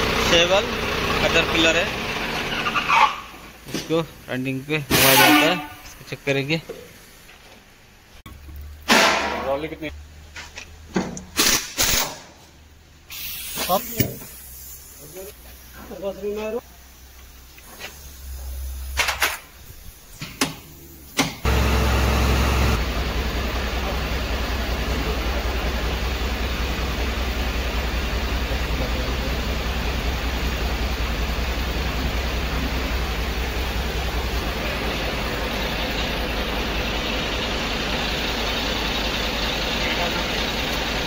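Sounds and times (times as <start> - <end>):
engine humming with even pulse: 0.0 - 4.7, 12.6 - 41.0.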